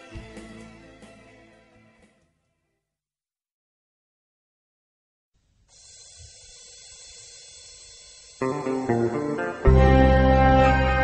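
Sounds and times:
faint recording hiss: 5.4s - 9.7s.

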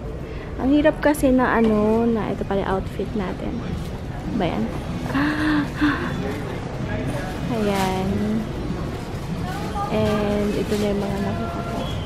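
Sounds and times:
low background hum: 0.0s - 12.0s
woman speaking: 0.6s - 3.6s, 4.3s - 6.2s, 7.5s - 8.5s, 9.7s - 11.6s.

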